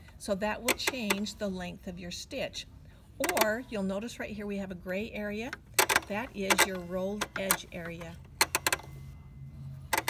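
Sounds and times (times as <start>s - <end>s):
sharp plastic clicks of controls: 5.4s - 8.9s.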